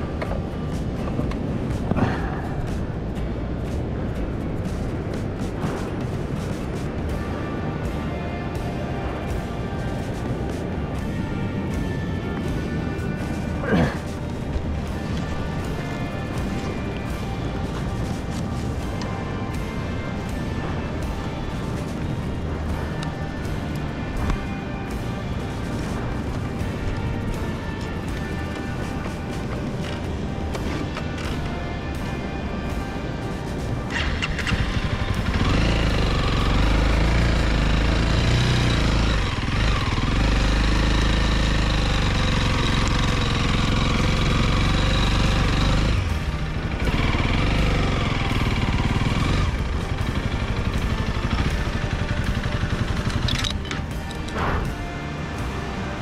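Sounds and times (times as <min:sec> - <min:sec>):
background music: 0:00.0 - 0:56.0
motorcycle engine: 0:00.0 - 0:56.0.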